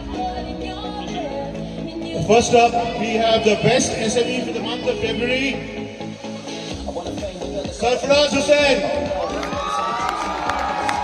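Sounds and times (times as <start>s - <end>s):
crowd cheering and shouting: 8.7s - 11.0s
sharp hand claps: 9.4s - 11.0s.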